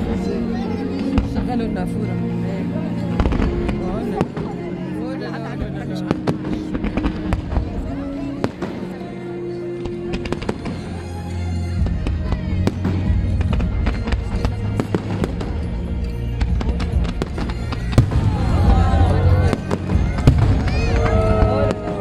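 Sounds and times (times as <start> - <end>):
fireworks bangs and crackles: 0.0 - 1.9, 3.0 - 22.0
fireworks booms: 16.4 - 22.0.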